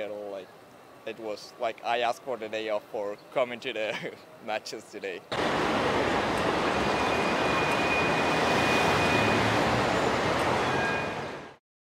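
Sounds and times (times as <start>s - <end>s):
city traffic noise: 0.0s - 11.6s.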